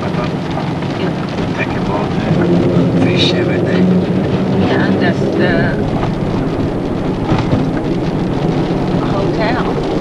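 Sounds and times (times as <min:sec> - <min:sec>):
car road and engine noise: 0:00.0 - 0:10.0
windshield wipers sweeping: 0:00.0 - 0:10.0.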